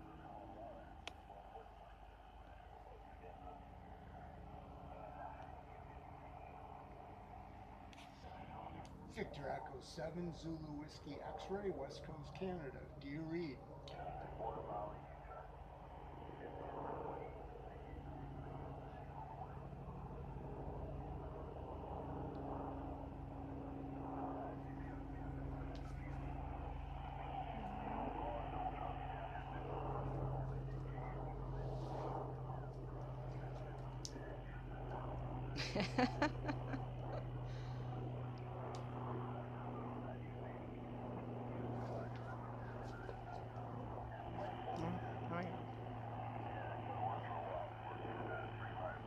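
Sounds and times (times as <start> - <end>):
faint voice through radio: 0.0 - 4.2, 8.0 - 15.6, 24.0 - 37.7, 38.6 - 49.0
low hum: 0.0 - 49.0.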